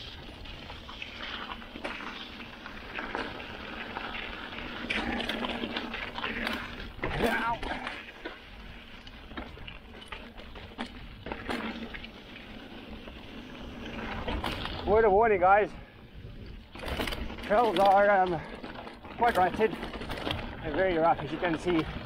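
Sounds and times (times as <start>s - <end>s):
bike rattling and knocking: 0.0s - 22.0s
bike tyres on dirt trail: 0.0s - 22.0s
rider vocal sound: 6.3s - 8.1s.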